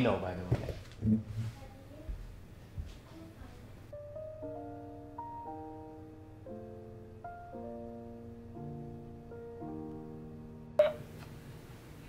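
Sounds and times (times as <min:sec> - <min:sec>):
held piano notes: 0:03.9 - 0:11.7
short electronic beep: 0:10.8 - 0:11.0.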